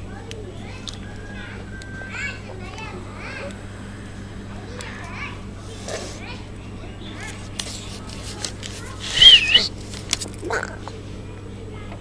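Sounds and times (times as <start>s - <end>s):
kitten mewing: 8.9s - 9.8s, 10.4s - 10.9s.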